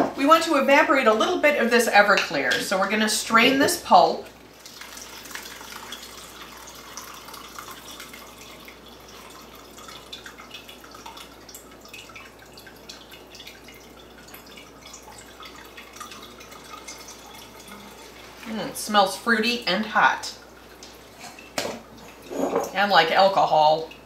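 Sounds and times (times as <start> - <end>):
small irregular drips: 4.2 - 18.9, 19.6 - 24.0
liquid trickling through strainer: 4.4 - 18.7.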